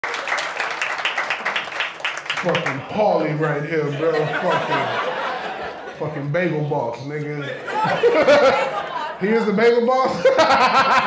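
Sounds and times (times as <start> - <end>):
rhythmic clapping: 0.0 - 3.2
audience applauding: 0.0 - 3.4.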